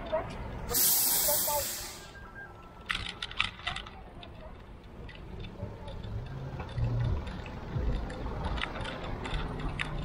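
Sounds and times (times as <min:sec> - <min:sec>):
air brakes hissing: 0:00.7 - 0:02.3.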